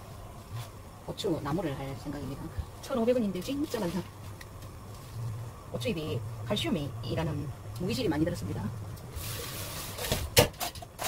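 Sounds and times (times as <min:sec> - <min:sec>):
soft hiss: 0:00.0 - 0:10.4.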